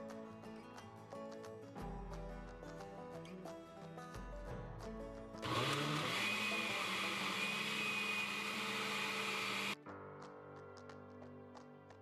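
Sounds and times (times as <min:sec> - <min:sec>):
blender motor whining: 0:05.4 - 0:09.8.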